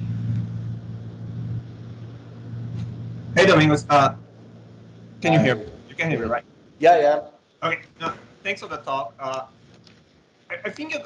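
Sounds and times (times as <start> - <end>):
faint background hiss: 0.0 - 11.0
steady low hum: 0.0 - 11.0.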